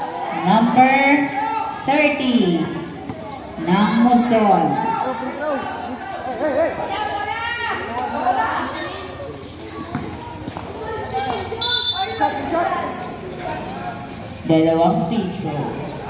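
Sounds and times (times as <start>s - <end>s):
basketball dribbling on concrete: 9.7s - 11.6s.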